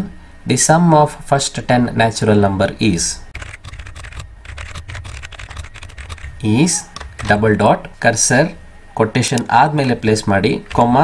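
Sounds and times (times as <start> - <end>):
computer keyboard typing: 3.4 - 7.4, 10.5 - 11.0.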